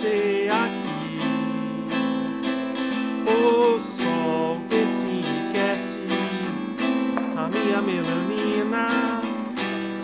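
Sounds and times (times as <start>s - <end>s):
acoustic guitar strumming: 0.0s - 10.0s
man singing: 0.0s - 10.0s.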